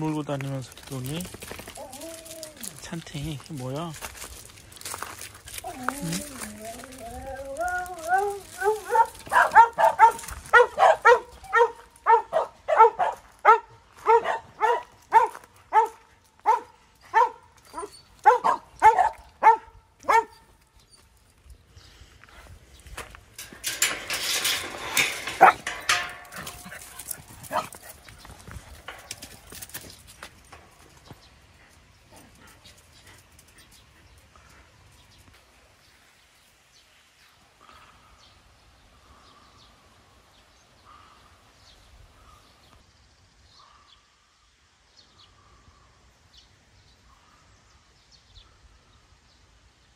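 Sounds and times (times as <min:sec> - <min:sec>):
rustling noise: 0:00.2 - 0:10.8, 0:22.1 - 0:31.4
dog barking: 0:08.6 - 0:20.4.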